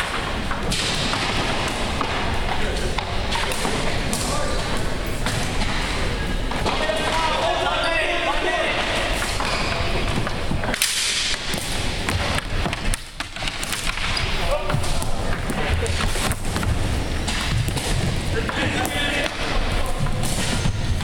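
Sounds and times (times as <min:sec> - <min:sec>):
plastic hockey sticks clacking: 0:00.0 - 0:05.8, 0:08.4 - 0:21.0
players calling out: 0:02.3 - 0:10.5.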